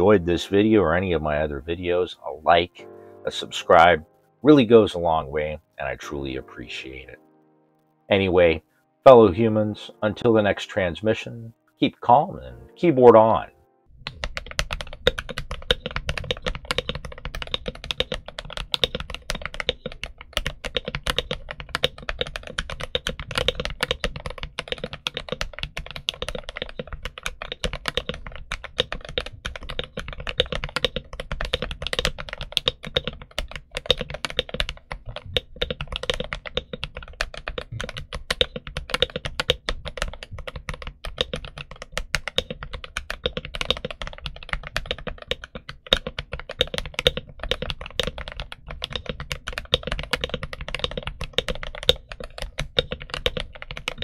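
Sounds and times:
fast mechanical keyboard typing: 14.0s - 54.0s.

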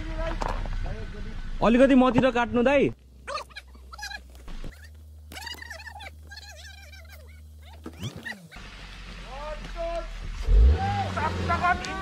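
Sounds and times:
car engine working hard: 8.5s - 12.0s
people calling out: 9.6s - 12.0s.

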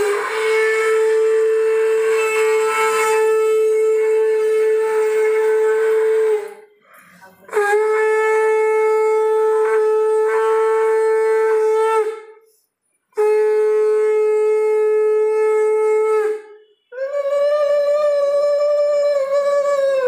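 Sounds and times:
conch shell blown: 0.0s - 20.0s.

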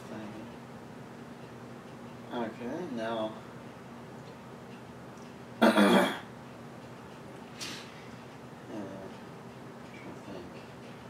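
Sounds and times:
person clearing throat: 5.6s - 6.3s.

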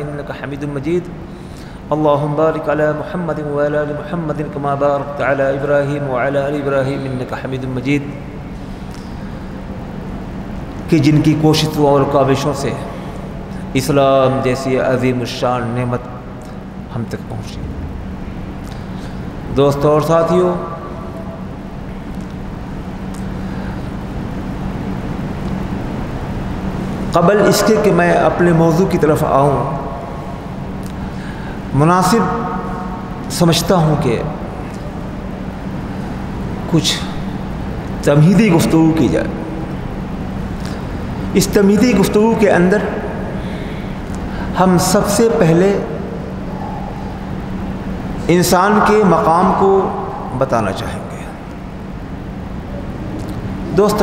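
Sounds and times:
low background rumble: 0.0s - 54.0s
steady low hum: 0.0s - 54.0s.

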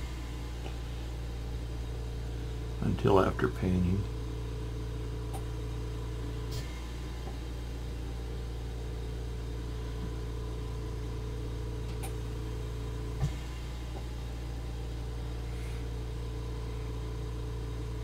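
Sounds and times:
low electrical hum: 0.0s - 18.0s.

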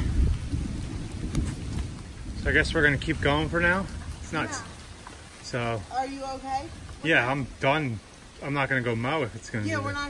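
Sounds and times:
thunder rumbling: 0.0s - 8.8s.

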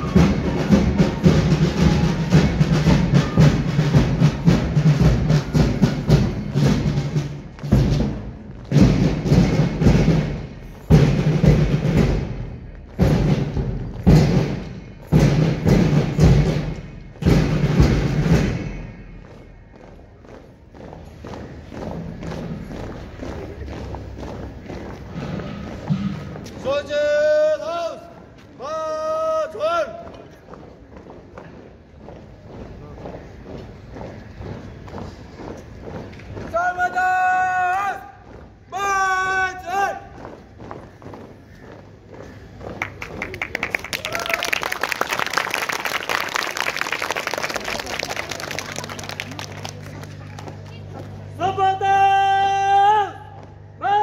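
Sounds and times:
shouted marching commands: 0.0s - 7.3s, 26.0s - 30.7s, 36.4s - 41.2s, 43.0s - 44.9s, 47.4s - 54.0s
marching band drums: 0.0s - 44.3s.

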